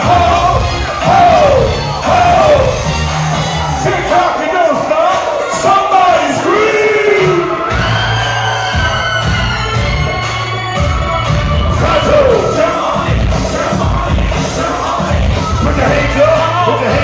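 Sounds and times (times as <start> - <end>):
crowd voices: 0.0 - 17.0
hip-hop music with heavy bass: 0.0 - 17.0.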